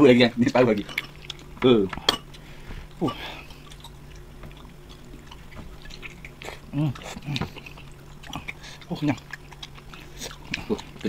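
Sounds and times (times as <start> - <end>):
low steady hum: 0.0 - 11.0
wet chewing and tearing chicken: 0.6 - 11.0.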